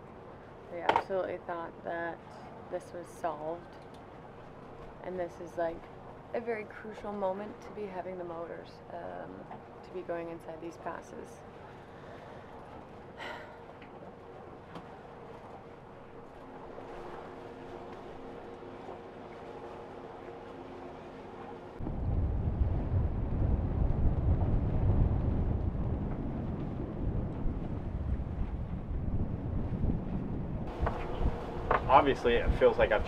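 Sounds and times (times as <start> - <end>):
wind buffeting microphone: 21.8 - 33.0.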